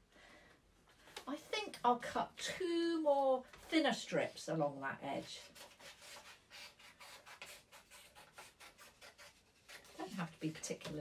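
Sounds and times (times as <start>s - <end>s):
scissors snipping paper: 5.4s - 11.0s.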